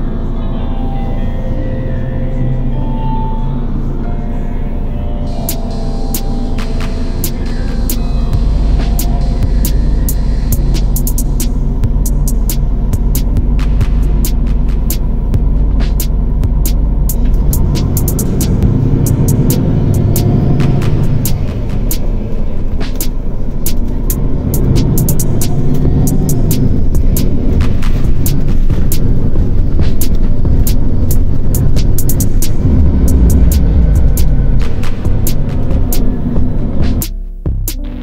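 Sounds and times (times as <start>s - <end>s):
background music: 0.0s - 38.0s
car running with road noise: 0.0s - 38.0s
sharp clicks: 22.8s - 36.1s.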